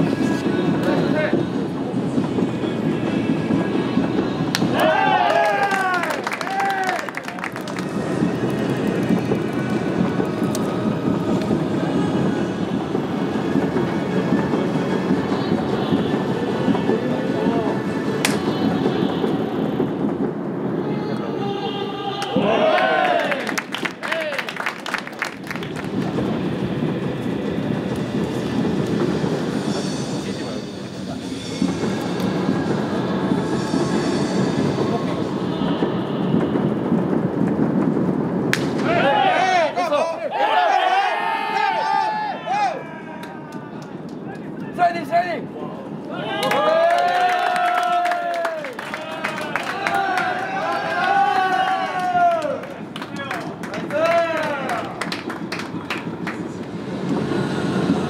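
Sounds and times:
echoing ballpark noise: 0.0 - 58.0
players shouting and cheering: 4.6 - 7.8, 21.3 - 24.7, 38.6 - 55.2.

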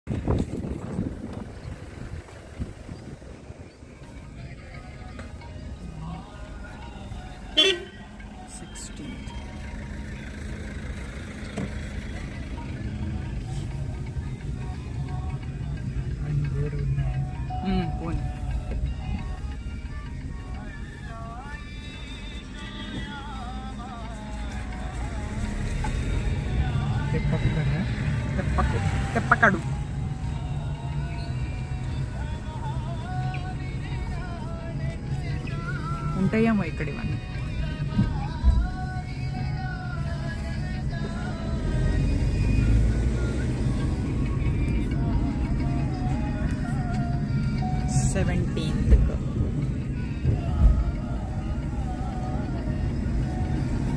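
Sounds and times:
car engine and road rumble: 0.0 - 53.9
wind gusting on microphone: 0.1 - 3.7
car horn toot: 7.5 - 8.1.

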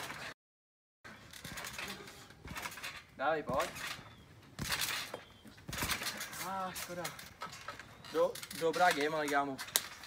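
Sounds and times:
bike thumping on trampoline: 1.1 - 10.0.

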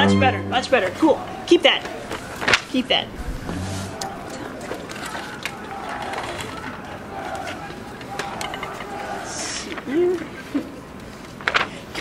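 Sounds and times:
musicians talking quietly: 0.8 - 10.9
clicks and knocks of instruments: 1.8 - 6.8
low tone: 3.1 - 4.4.

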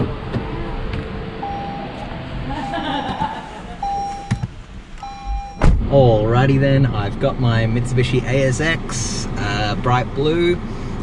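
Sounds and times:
car warning chime beeping: 1.4 - 2.1, 3.8 - 5.7
car door shutting thud: 5.3 - 5.9.

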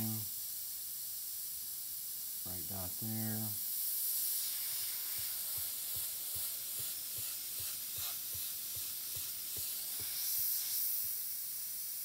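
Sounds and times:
airbrush hissing: 0.0 - 12.0.

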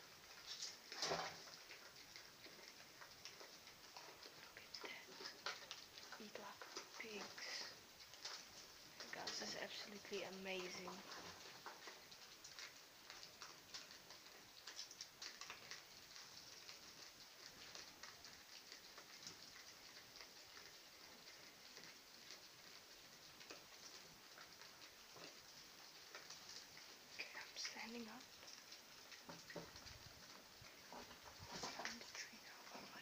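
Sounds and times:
faint irregular clicks: 0.0 - 33.0.

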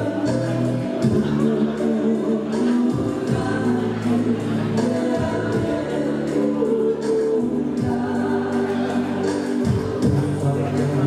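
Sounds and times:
group singing in harmony: 0.0 - 11.0
low instrumental backing: 0.0 - 11.0.

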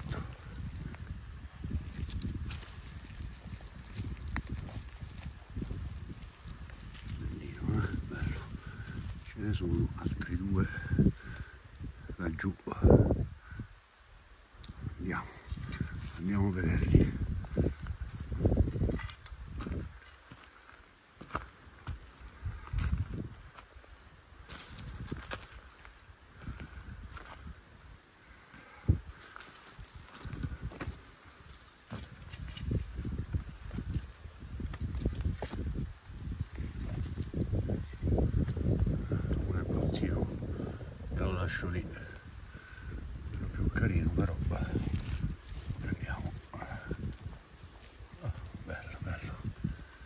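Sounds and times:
footsteps through undergrowth: 0.0 - 11.9, 14.8 - 39.5, 41.9 - 50.0
twig snapping: 0.4 - 7.2, 18.9 - 20.4.

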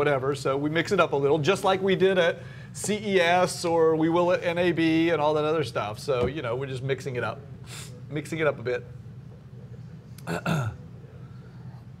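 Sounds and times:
man's throaty vocal sound: 10.2 - 10.8.

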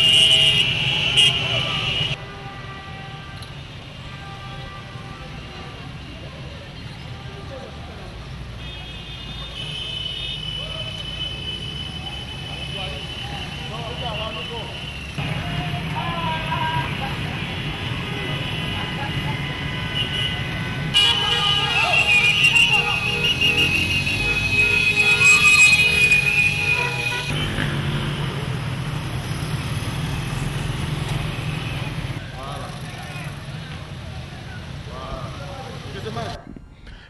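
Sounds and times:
motorcycle and car engines: 15.0 - 18.0, 22.7 - 36.4
long vehicle horn toot: 19.7 - 27.6.

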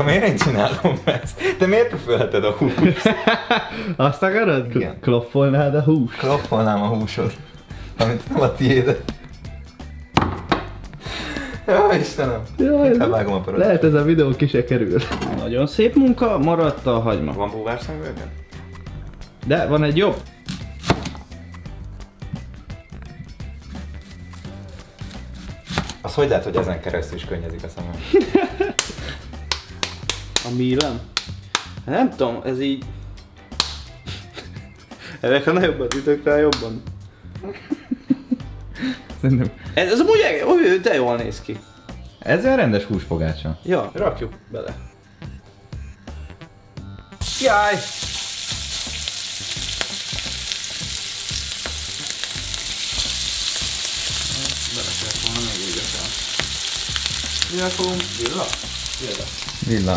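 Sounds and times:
hands slapping meat patty: 28.7 - 31.8, 33.5 - 34.0, 54.1 - 59.2
burger patties sizzling in oil: 47.2 - 59.9.

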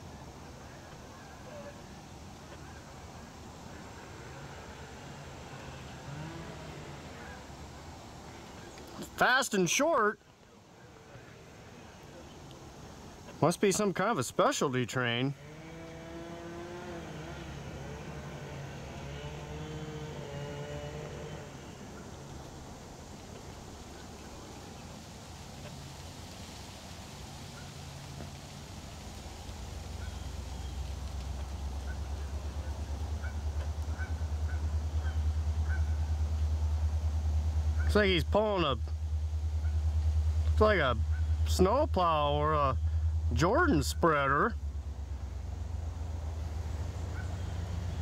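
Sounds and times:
locomotive engine rumble: 15.4 - 48.0.

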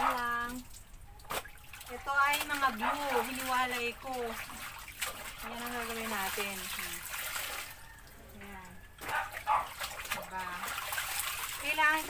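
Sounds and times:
water sloshing in plastic basin: 0.0 - 12.0
hose running into tub: 1.3 - 7.8, 9.1 - 12.0.

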